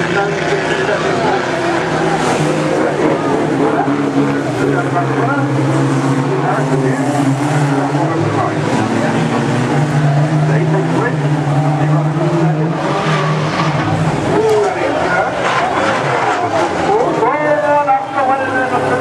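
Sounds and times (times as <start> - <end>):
race car engines revving: 0.0 - 19.0
tyres skidding: 0.0 - 19.0
voices: 0.0 - 19.0.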